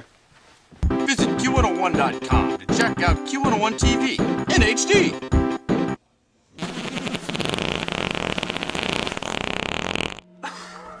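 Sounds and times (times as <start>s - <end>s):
buzzing fart noise: 6.6s - 10.3s.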